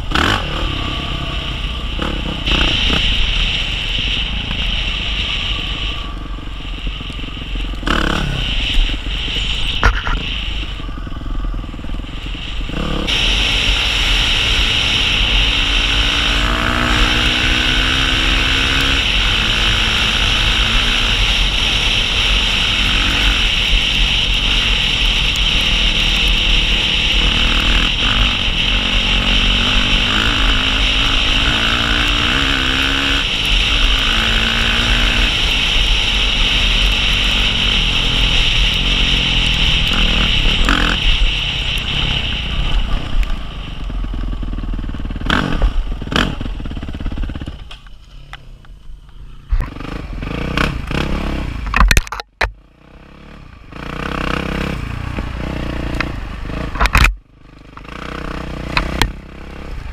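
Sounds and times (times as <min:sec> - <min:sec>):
dirt bike engine revving: 0:00.0 - 0:47.7, 0:49.4 - 0:51.8, 0:52.6 - 0:59.9
wind rushing over microphone: 0:00.0 - 0:47.7.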